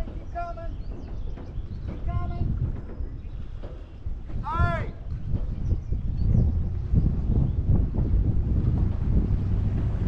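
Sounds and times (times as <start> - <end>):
steady low rumble: 4.9 - 10.0.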